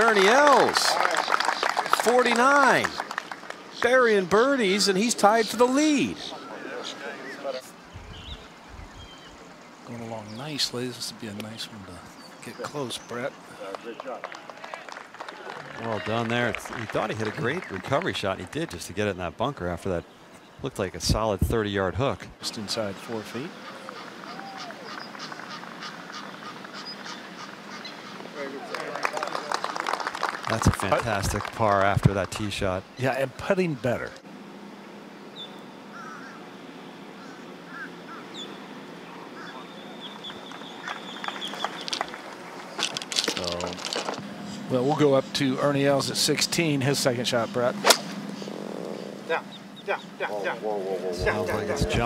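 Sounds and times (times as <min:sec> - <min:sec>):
birds chirping: 0:00.0 - 0:14.6, 0:15.8 - 0:29.5, 0:30.5 - 0:52.0
indistinct voices: 0:49.2 - 0:52.0
man speaking: 0:49.3 - 0:52.0.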